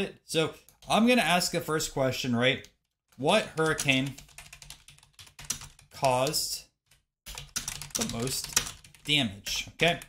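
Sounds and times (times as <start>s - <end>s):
computer keyboard typing: 3.5s - 9.2s.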